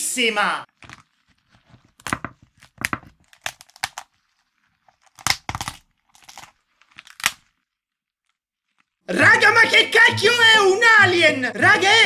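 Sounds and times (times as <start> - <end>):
lobster shell cracking: 0.7 - 9.0.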